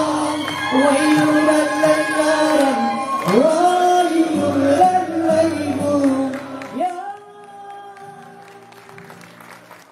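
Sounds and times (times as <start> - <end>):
man singing: 0.0 - 8.9.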